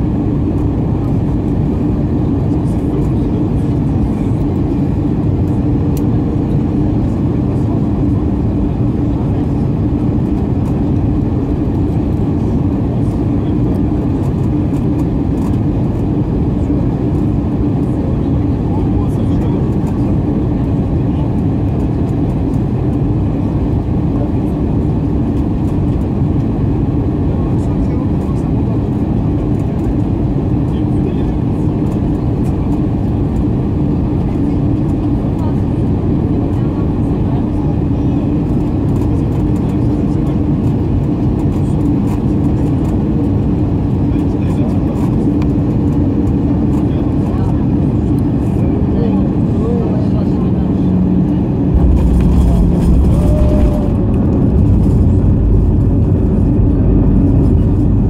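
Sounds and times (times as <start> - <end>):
aircraft cabin engine roar: 0.0 - 58.0.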